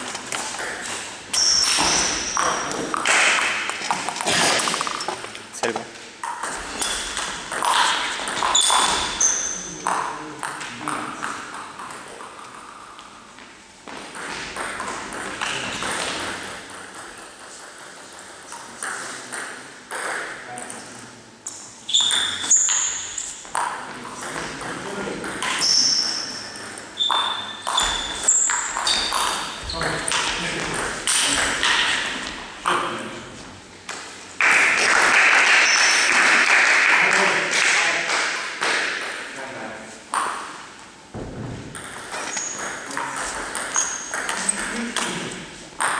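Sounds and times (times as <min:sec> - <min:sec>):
shoe squeaks: 0:01.3 - 0:02.8, 0:06.6 - 0:09.8, 0:21.9 - 0:23.4, 0:25.5 - 0:30.4, 0:42.1 - 0:43.0, 0:43.6 - 0:44.6
people clapping: 0:34.4 - 0:39.0
ping pong ball clicking: 0:41.8 - 0:45.1.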